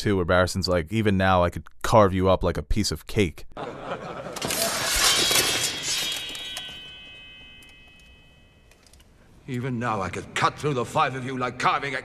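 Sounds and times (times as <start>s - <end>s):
sword drawn from scabbard: 4.4s - 7.0s
metallic ring: 4.4s - 9.3s.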